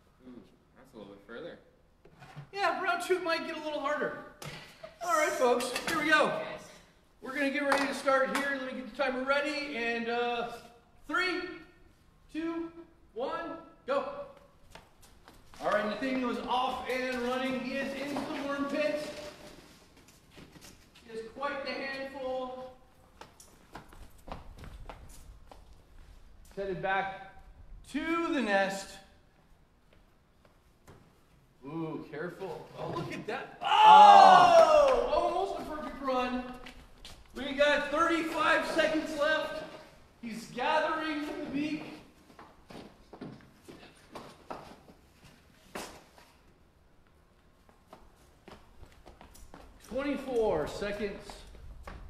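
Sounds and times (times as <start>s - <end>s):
person speaking: 2.5s - 14.6s, 15.6s - 19.6s, 31.6s - 42.2s, 49.8s - 51.5s
faint footsteps: 14.3s - 26.8s, 29.3s - 31.5s, 34.8s - 40.2s, 40.9s - 52.0s.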